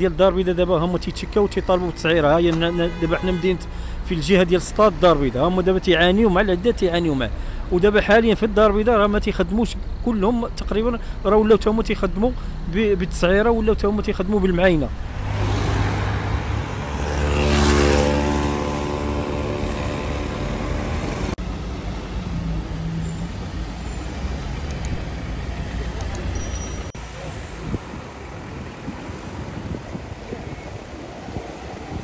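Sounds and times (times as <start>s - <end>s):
road traffic noise: 0.0s - 32.0s
car engine passing close: 14.7s - 26.3s.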